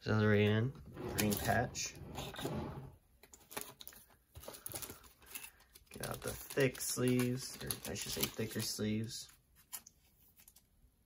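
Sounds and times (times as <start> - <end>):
trading cards rustling: 3.2 - 10.7.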